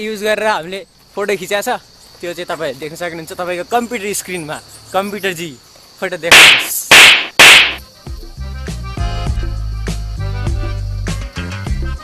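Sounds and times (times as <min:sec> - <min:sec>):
background music with bass line: 0:08.1 - 0:12.0.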